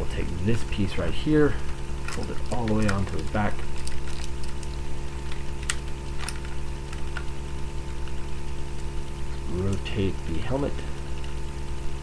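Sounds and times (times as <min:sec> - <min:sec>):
electrical hum: 0:00.0 - 0:12.0
plastic toy parts snapping: 0:05.3 - 0:07.3.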